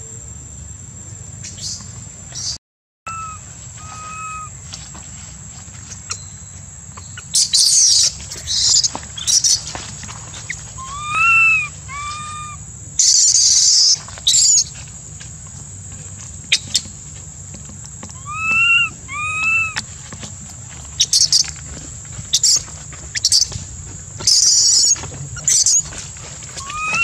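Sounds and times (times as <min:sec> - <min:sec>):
high insect whine: 0:00.0 - 0:27.0
baby monkey coo calls: 0:02.4 - 0:04.7, 0:07.1 - 0:09.7, 0:10.3 - 0:14.7, 0:18.1 - 0:20.1, 0:20.9 - 0:21.6, 0:22.3 - 0:23.6, 0:24.2 - 0:27.0.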